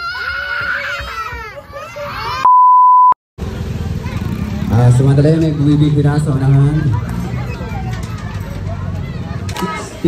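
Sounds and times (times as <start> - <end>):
outdoor crowd noise: 0.0 - 10.0
edited-in beep tone: 2.4 - 3.2.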